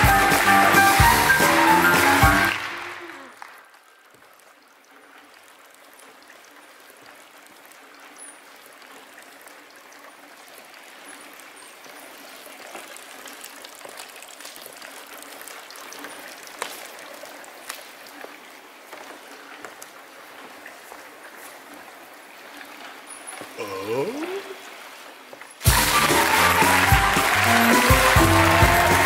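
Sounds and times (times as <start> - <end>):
audience applauding: 0.0 - 3.9, 25.6 - 29.0.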